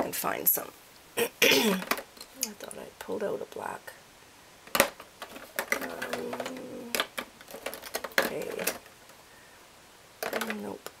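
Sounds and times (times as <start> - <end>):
person saying uhh: 5.8 - 7.0
small objects clicking on table: 10.2 - 11.0.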